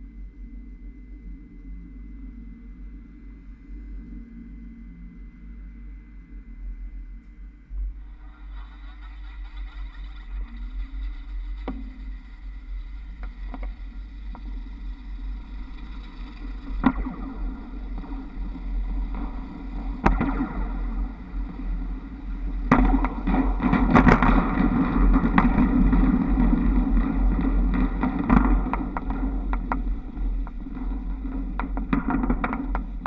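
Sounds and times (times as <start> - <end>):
wind rushing over microphone: 7.8 - 33.0.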